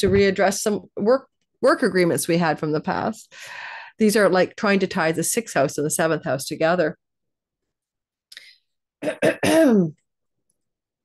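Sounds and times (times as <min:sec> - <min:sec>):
woman clearing her throat: 0:09.0 - 0:10.0.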